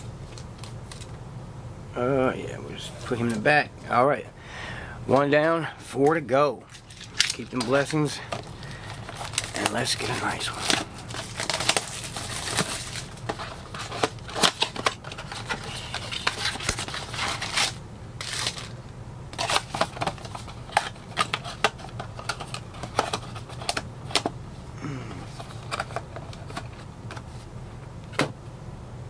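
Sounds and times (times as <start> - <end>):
cardboard crinkling and tearing: 6.8 - 18.8, 19.4 - 24.2.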